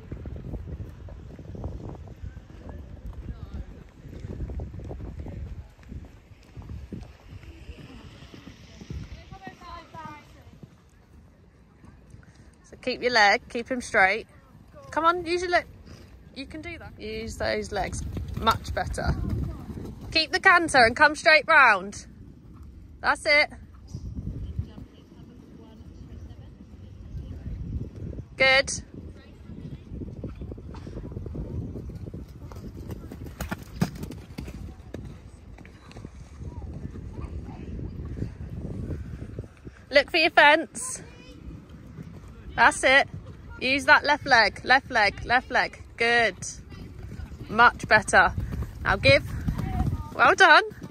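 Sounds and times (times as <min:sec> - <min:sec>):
horse hoofbeats on sand: 0:17.6 - 0:20.6, 0:30.3 - 0:38.2, 0:46.6 - 0:50.9.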